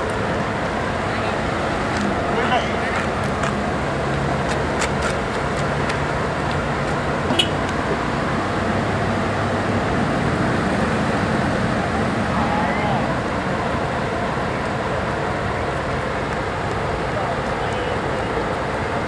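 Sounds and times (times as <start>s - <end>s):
diesel bus engines idling: 0.0s - 19.0s
faint voices: 0.9s - 3.5s, 11.7s - 19.0s.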